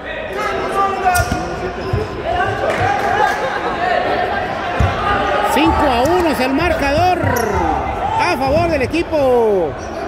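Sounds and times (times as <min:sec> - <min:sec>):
voices echoing in hall: 0:00.0 - 0:10.0.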